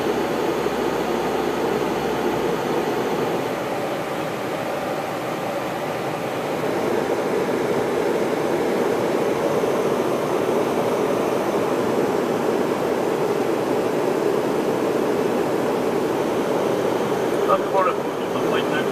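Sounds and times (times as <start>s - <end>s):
airplane cabin noise: 0.0s - 18.9s
jet engines: 0.0s - 18.9s.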